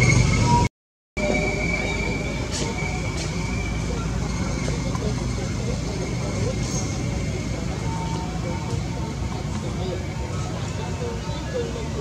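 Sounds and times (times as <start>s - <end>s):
faint indistinct voices: 1.2s - 12.0s.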